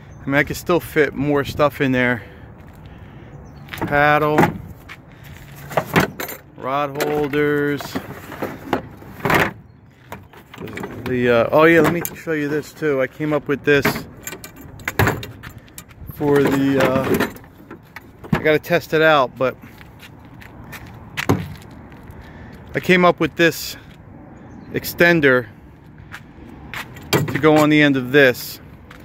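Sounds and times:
faint outdoor background: 0.0 - 29.0
handling noise: 3.6 - 18.8, 19.6 - 22.1
soft footsteps: 25.8 - 27.6.

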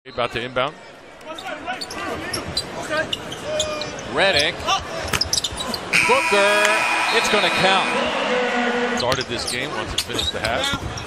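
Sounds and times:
arena noise: 0.2 - 11.0
basketball shoes squeaking on hardwood: 5.1 - 5.8.

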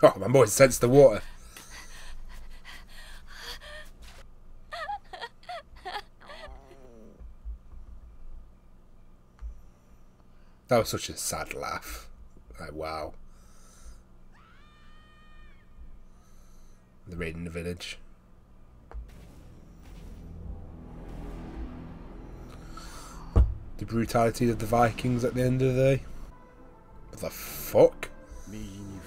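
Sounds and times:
person panting: 1.2 - 4.2
high-pitched meow-like cry: 14.3 - 15.8.

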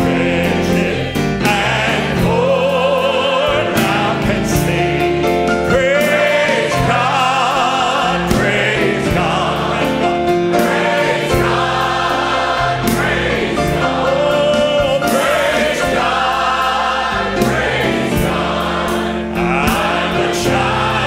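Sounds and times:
gospel choir singing a hymn: 0.0 - 21.0.

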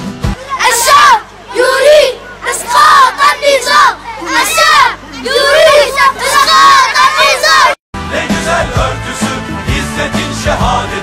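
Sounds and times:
children shouting together: 0.4 - 7.8.

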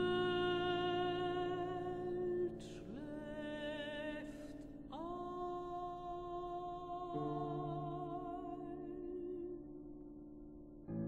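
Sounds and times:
woman singing with vibrato: 0.0 - 9.8
piano accompaniment: 0.0 - 11.0.

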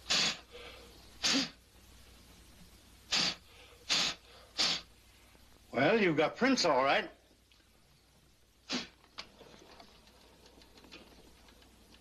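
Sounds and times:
short puffs of breath: 0.0 - 1.6, 3.1 - 5.4, 8.7 - 9.0.

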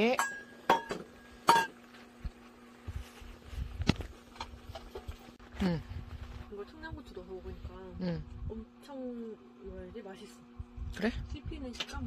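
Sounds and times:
metal bowls clinking on wooden table: 0.0 - 1.8.

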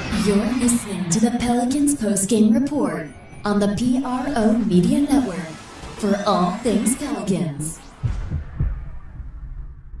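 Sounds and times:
low rumble: 0.0 - 10.0
deep bass thumps: 8.0 - 10.0.

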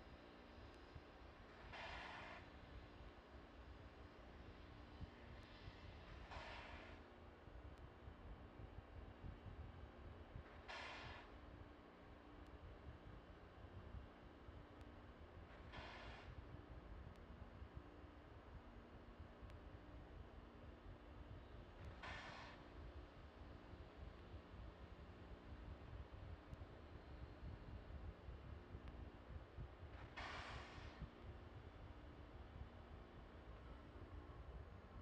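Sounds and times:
faint steady hum: 0.0 - 35.0
short hiss: 30.2 - 31.1.

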